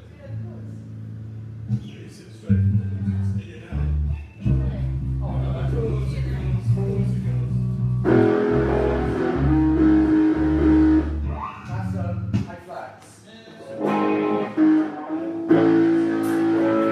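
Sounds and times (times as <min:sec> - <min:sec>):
electric bass line: 0:00.4 - 0:12.5, 0:13.7 - 0:16.9
amplified electric guitar: 0:01.6 - 0:12.5, 0:13.6 - 0:16.9.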